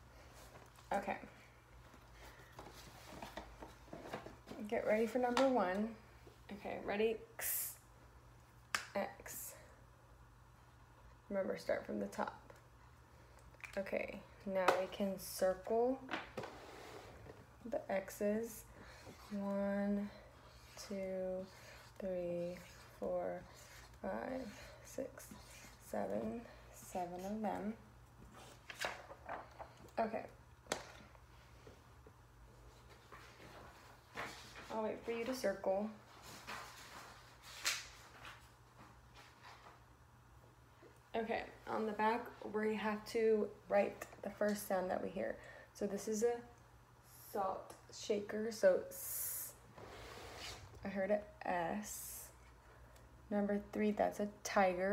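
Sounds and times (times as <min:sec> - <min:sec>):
low room hum: 0:00.0 - 0:54.9
paper scraping on whiteboard: 0:20.4 - 0:26.4.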